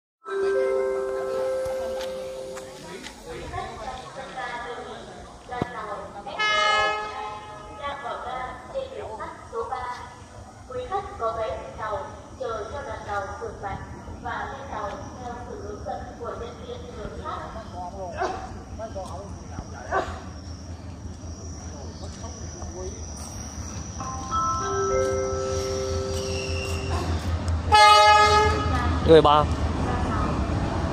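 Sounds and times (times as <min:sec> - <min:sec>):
locomotive horn blast: 0:06.4 - 0:07.8, 0:25.4 - 0:28.9
distant voices: 0:07.0 - 0:27.7
dog barking: 0:18.2 - 0:18.5.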